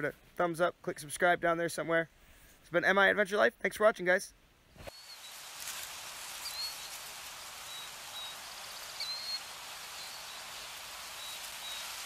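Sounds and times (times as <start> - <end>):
steady outdoor hiss: 0.0 - 12.0
high bird chirps: 4.9 - 5.4, 6.3 - 12.0.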